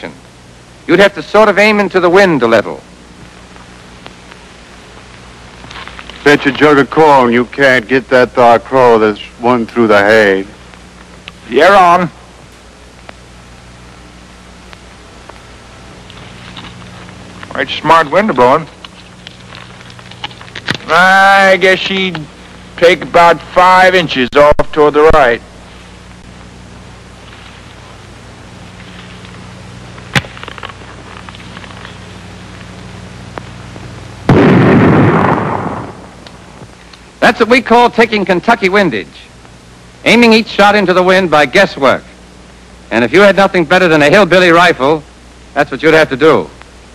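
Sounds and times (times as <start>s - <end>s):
film soundtrack hiss and hum: 0.0s - 46.9s
rifle shot: 34.3s - 36.5s.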